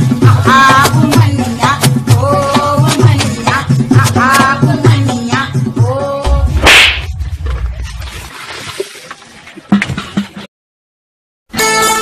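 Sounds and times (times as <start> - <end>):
song with singing voice: 0.0 - 7.1
low rumble: 6.2 - 8.4
whip-like comic swish: 6.5 - 7.2.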